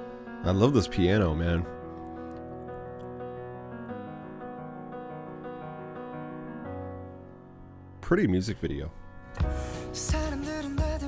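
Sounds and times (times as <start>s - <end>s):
soft piano chords: 0.0s - 11.0s.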